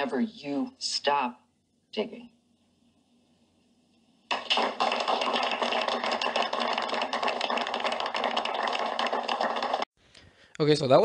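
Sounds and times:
audience applauding: 0:04.3 - 0:09.9.

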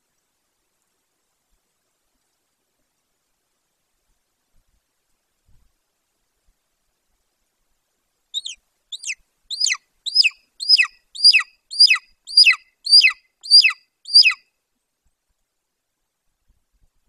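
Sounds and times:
eagle calling: 0:08.4 - 0:14.4.

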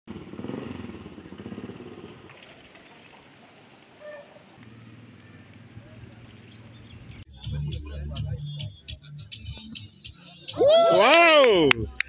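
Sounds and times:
vehicle engine running: 0:00.1 - 0:02.3, 0:04.4 - 0:07.3.

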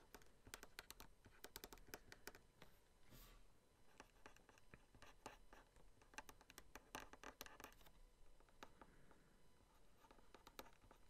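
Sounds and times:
stylus scratching on tablet: 0:03.9 - 0:07.9, 0:09.7 - 0:11.0.

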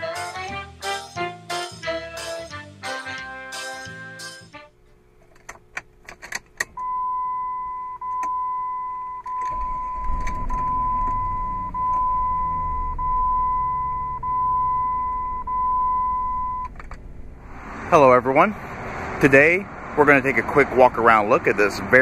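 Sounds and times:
car engine starting and idling: 0:05.6 - 0:22.0
dashboard warning chime: 0:06.8 - 0:16.7.

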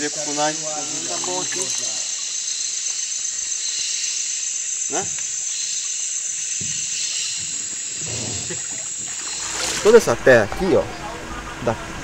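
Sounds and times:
rainforest hiss: 0:00.0 - 0:12.0
water moving: 0:00.6 - 0:02.3, 0:06.8 - 0:11.6.

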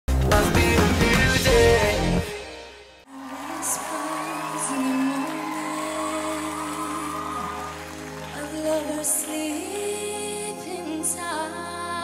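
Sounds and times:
slow power ballad chords: 0:00.1 - 0:03.0
audience whoop: 0:03.1 - 0:10.0.

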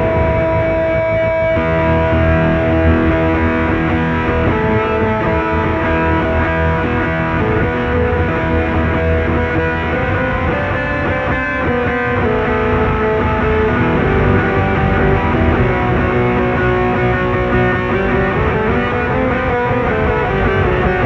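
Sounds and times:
guitar playing held notes: 0:00.0 - 0:21.0.

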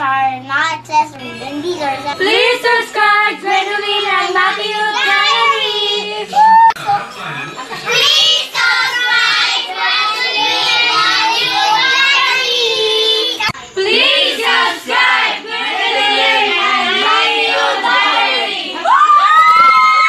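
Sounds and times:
children singing together: 0:02.2 - 0:06.4, 0:07.8 - 0:18.8.

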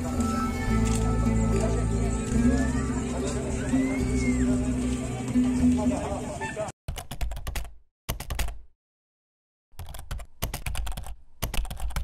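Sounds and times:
keyboard typing clicks: 0:06.9 - 0:08.6, 0:09.8 - 0:12.0.

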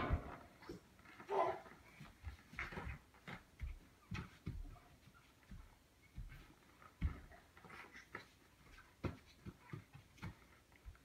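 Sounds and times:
small footsteps on carpet: 0:00.0 - 0:11.0.

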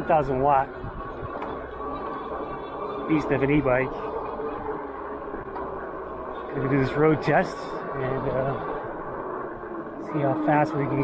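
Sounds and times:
fat tyres rolling on asphalt: 0:00.0 - 0:11.0
wind on microphone: 0:00.0 - 0:11.0.

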